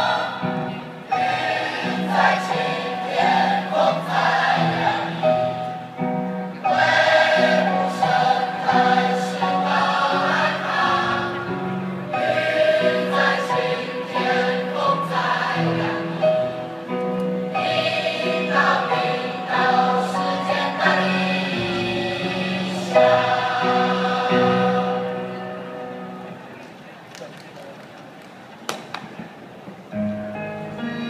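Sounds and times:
chorus singing: 0.0 - 26.2.

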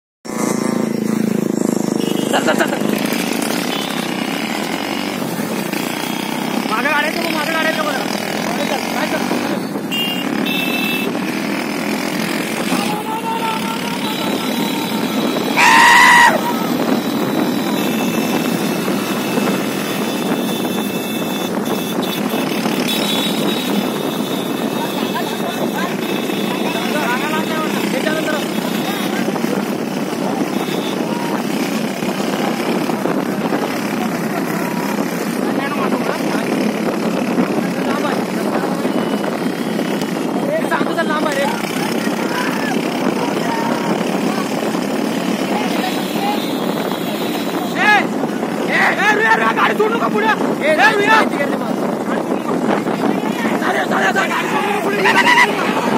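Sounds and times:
motorcycle engines running: 0.2 - 55.9
voices: 0.9 - 21.6, 22.4 - 55.9.

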